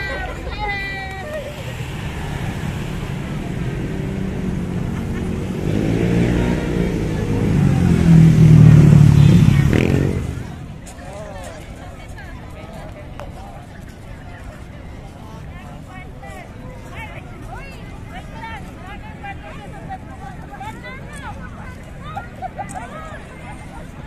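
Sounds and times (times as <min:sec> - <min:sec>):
crowd chatter: 0:00.0 - 0:24.0
voices: 0:00.0 - 0:24.0
vehicle engine passing by: 0:01.3 - 0:10.8.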